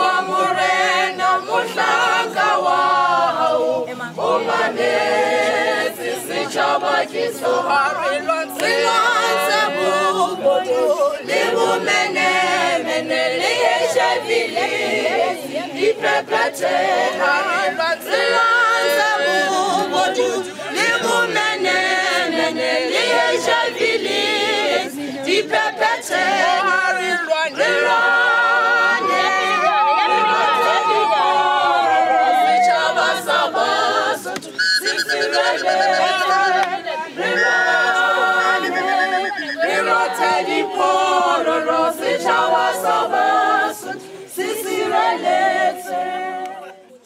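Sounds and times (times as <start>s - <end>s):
a cappella choir singing: 0.0s - 47.0s.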